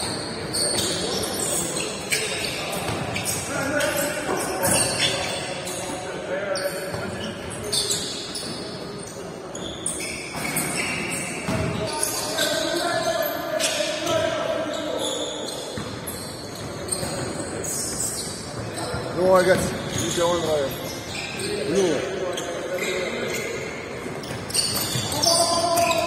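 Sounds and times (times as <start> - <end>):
basketballs bouncing on court: 2.4 - 5.2, 9.6 - 11.9, 15.8 - 21.2, 24.0 - 26.0.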